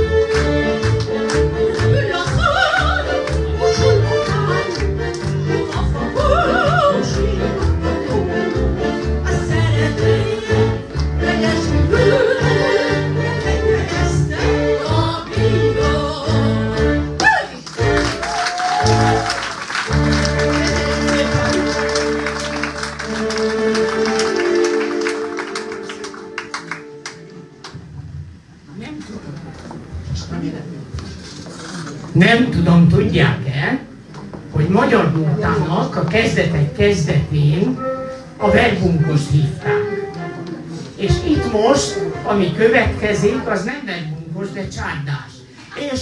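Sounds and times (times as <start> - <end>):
woman singing into microphone: 1.9 - 4.8, 5.5 - 7.7
audience applause: 17.5 - 27.7
electronic keyboard accompaniment: 17.8 - 28.0.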